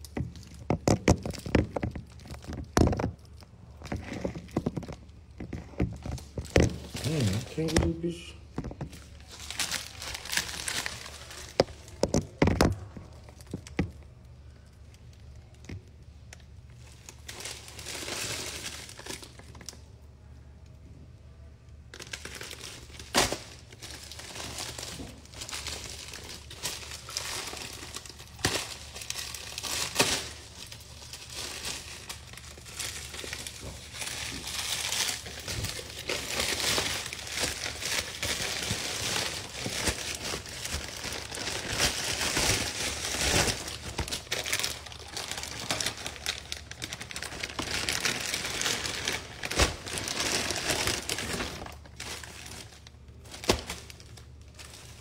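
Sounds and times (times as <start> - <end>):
plastic bag crinkling: 0.0 - 20.0, 21.9 - 55.0.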